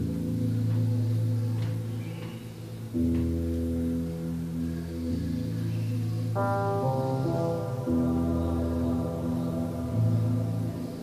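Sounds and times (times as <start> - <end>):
synthesizer ambient pad: 0.0 - 11.0.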